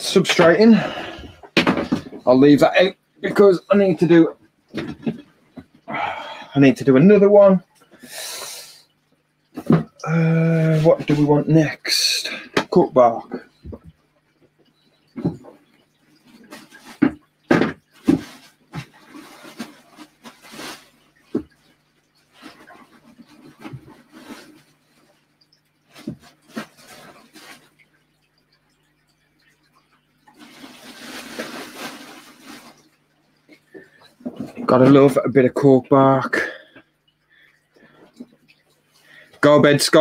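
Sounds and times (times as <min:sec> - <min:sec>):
objects knocking and clattering: 0:01.0 - 0:02.3, 0:04.7 - 0:05.8, 0:09.6 - 0:10.0, 0:13.6 - 0:21.7, 0:33.4 - 0:35.2
steady hiss: 0:05.9 - 0:13.9, 0:16.2 - 0:28.0, 0:30.3 - 0:38.2.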